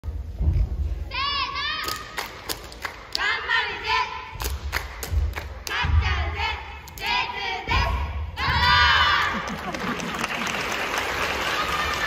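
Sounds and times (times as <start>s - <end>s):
sharp claps: 1.8s - 3.3s, 4.4s - 6.0s
children shouting cheers: 11.2s - 12.0s.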